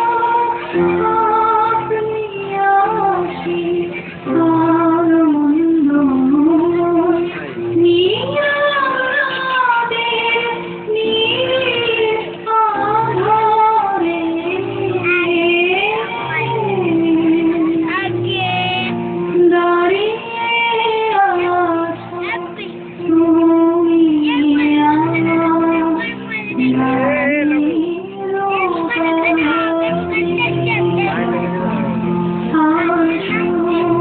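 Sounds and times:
music: 0.0s - 34.0s
high singing voice holding notes: 19.6s - 31.9s.

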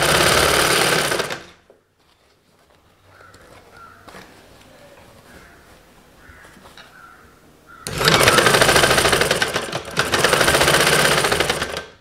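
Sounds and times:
sewing machine running fast: 0.0s - 1.6s, 7.9s - 12.0s.

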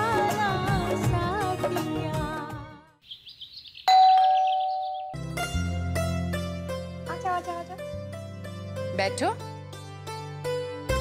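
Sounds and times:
faint bird chirping: 3.0s - 5.2s
two-tone doorbell chime: 3.9s - 5.2s.

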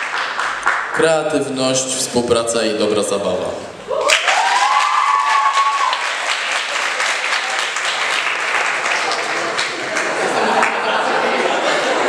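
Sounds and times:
audience applauding: 0.0s - 1.2s, 4.0s - 12.0s.

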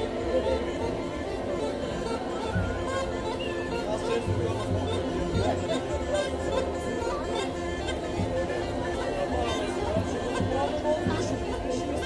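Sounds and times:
crowd chattering: 0.0s - 12.0s
folk music playing: 0.0s - 12.0s.

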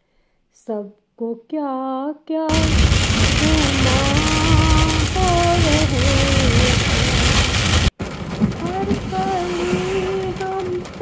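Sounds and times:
rain pelting car windscreen: 2.5s - 11.0s.

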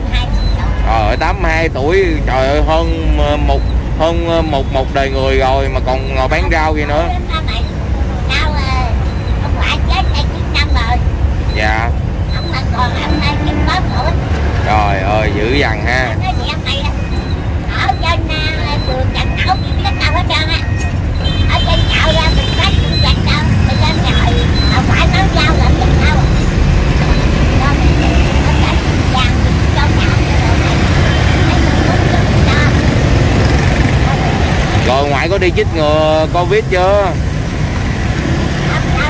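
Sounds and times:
motorbikes and scooters passing: 0.0s - 39.0s.

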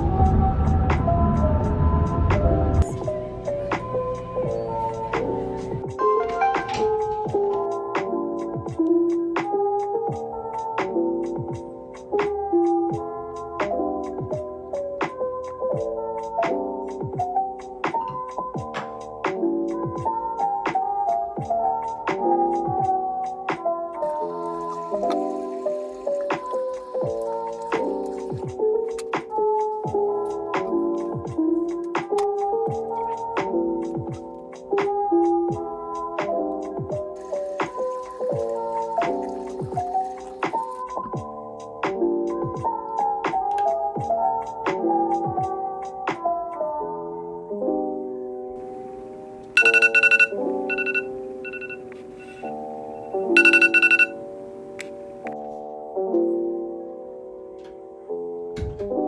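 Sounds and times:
lo-fi keyboard music: 0.0s - 59.0s
drip-like blips: 49.6s - 51.0s
phone timer alarm beeping: 49.6s - 54.2s.

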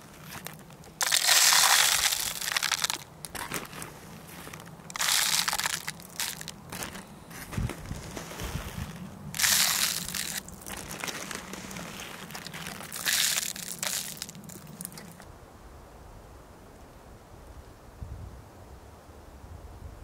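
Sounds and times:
birdseed pouring into plastic bottle: 1.0s - 3.7s, 4.9s - 6.5s, 9.4s - 15.2s
quiet rustling: 2.8s - 15.2s.

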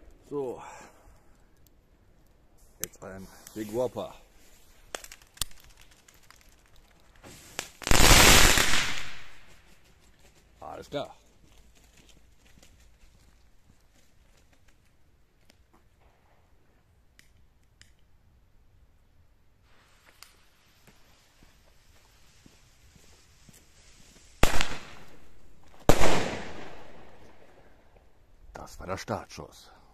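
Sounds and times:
firework dense crackling: 3.3s - 9.8s, 19.6s - 28.0s
firework bangs: 7.2s - 9.6s, 24.1s - 27.7s.

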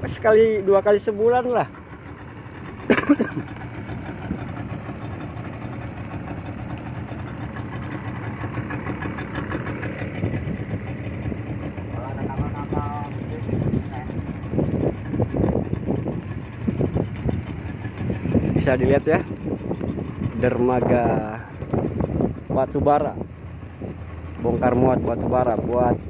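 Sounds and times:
outboard motor running: 0.0s - 26.0s.

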